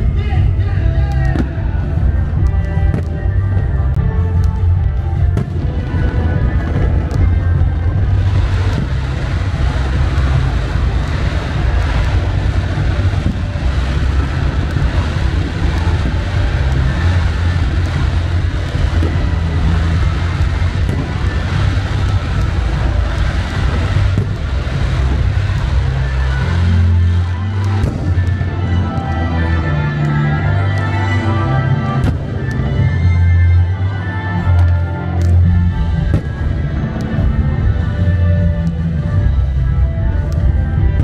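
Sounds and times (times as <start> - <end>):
fireworks rushing noise: 0.0 - 41.0
loud music with pulsing bass: 0.0 - 41.0.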